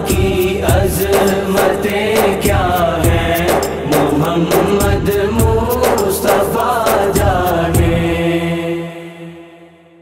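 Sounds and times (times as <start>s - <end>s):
sharp percussive beats: 0.0s - 8.3s
man singing: 0.0s - 9.5s.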